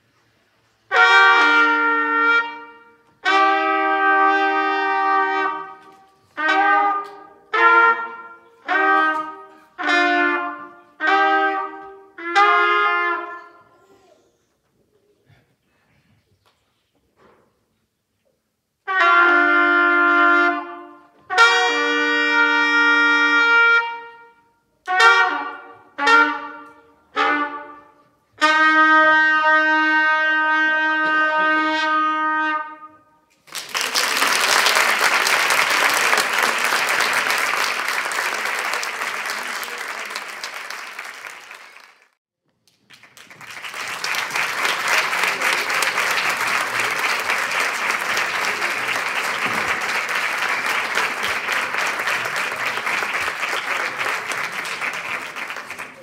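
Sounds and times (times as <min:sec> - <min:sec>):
trumpets playing: 0:00.9 - 0:13.7, 0:18.8 - 0:33.4
audience applause: 0:33.4 - 0:42.2, 0:42.8 - 0:56.0.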